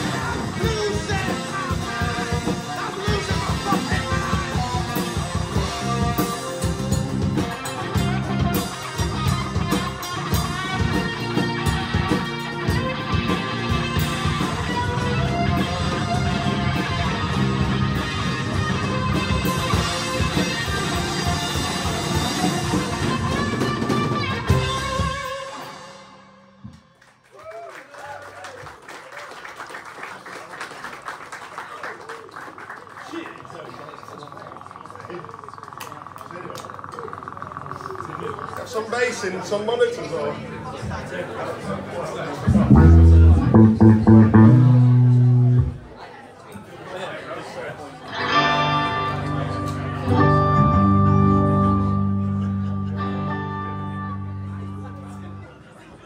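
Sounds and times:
audience clapping: 26.7 - 34.2
deep bass note: 42.5 - 45.9
electric guitar chord ringing: 42.6 - 45.9, 48.1 - 55.4.

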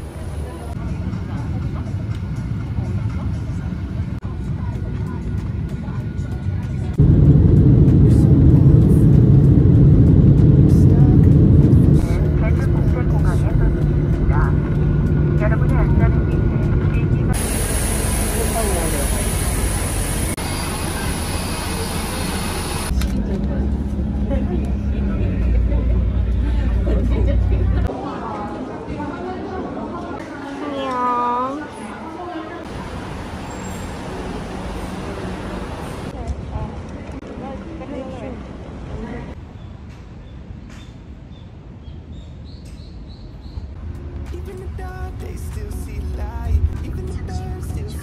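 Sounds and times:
airliner cabin rumble: 0.1 - 27.9.

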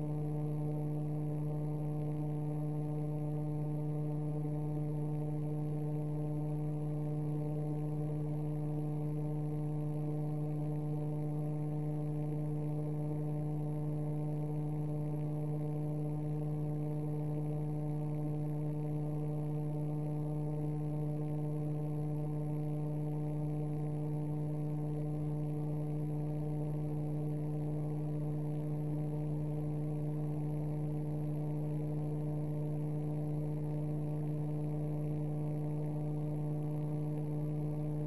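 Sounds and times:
steady electrical hum: 0.0 - 38.0.

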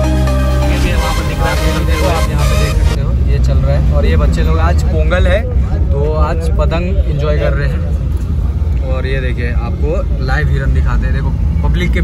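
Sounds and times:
minibus engine and road noise: 0.0 - 12.0
people's voices: 0.5 - 12.0.

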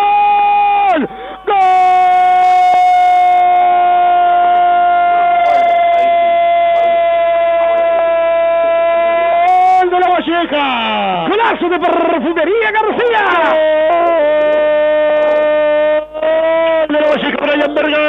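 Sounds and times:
commentator's long goal shout on radio: 0.0 - 18.0.

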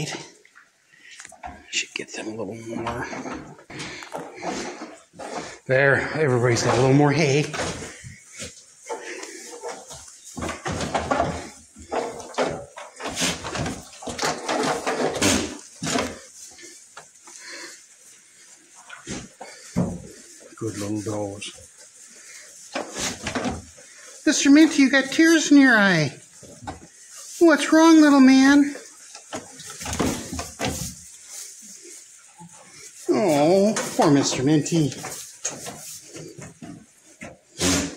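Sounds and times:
goats chewing hay: 0.0 - 37.9
dry hay rustling and crunching: 4.3 - 37.9.

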